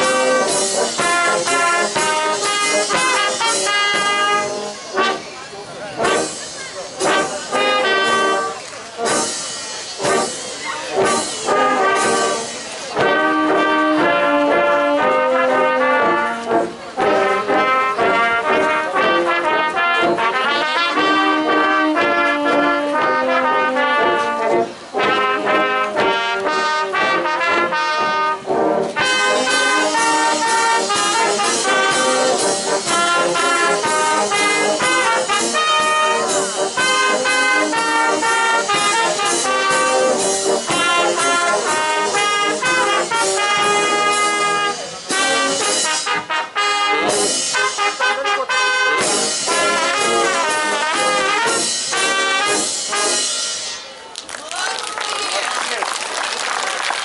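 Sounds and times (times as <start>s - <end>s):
brass band playing: 0.0s - 54.0s.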